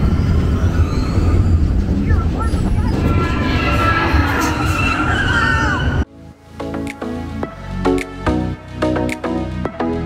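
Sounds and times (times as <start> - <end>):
ride vehicle rumbling: 0.0 - 6.1.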